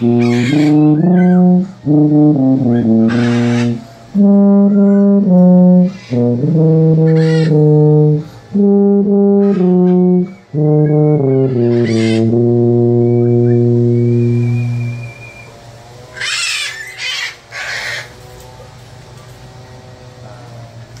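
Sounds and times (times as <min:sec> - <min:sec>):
tuba playing notes: 0:00.0 - 0:16.3
loud noisy bursts: 0:00.0 - 0:21.0.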